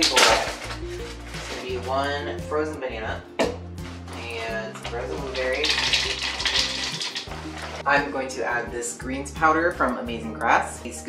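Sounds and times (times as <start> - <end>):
plastic bag crinkling: 0.0 - 2.0, 4.7 - 7.9
background music: 0.0 - 11.0.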